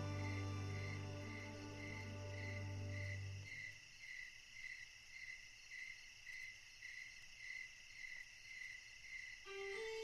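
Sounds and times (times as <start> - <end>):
faint cricket chirping: 0.0 - 10.0
low night-time hiss: 0.0 - 10.0.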